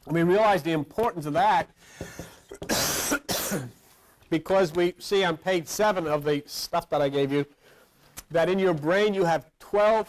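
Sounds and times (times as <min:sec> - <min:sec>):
person coughing: 0:02.5 - 0:03.8.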